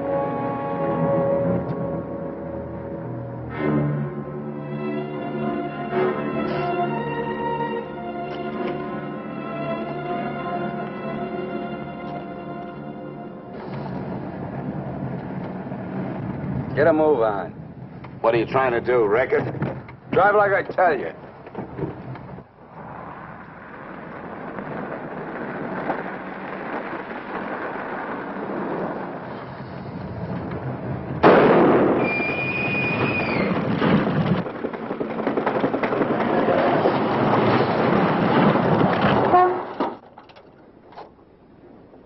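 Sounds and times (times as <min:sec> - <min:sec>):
car engine and road noise: 0:00.0 - 0:42.0.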